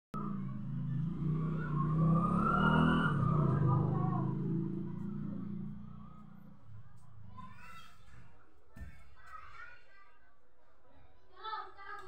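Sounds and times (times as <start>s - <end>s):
vehicle engine running: 0.2s - 7.0s.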